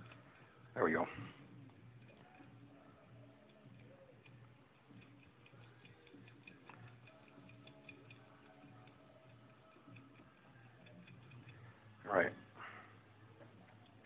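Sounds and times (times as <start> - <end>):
faint ticking: 0.0 - 14.0.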